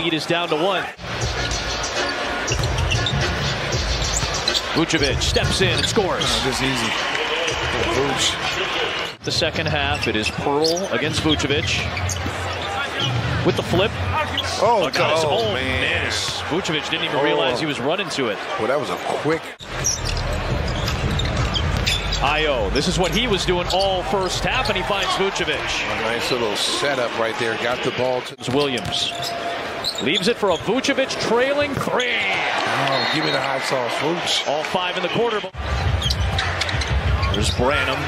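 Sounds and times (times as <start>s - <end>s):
arena crowd noise: 0.0s - 38.0s.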